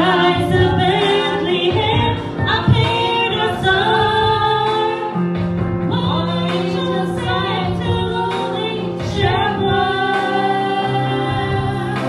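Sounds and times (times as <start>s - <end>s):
instrumental accompaniment: 0.0s - 12.0s
woman singing: 0.0s - 12.0s.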